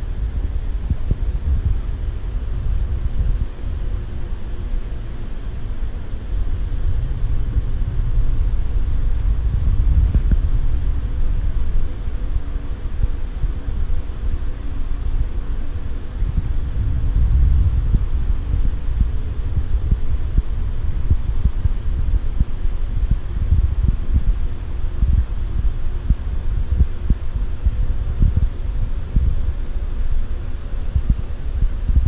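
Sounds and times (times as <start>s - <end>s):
aquarium pumps humming: 0.0s - 32.0s.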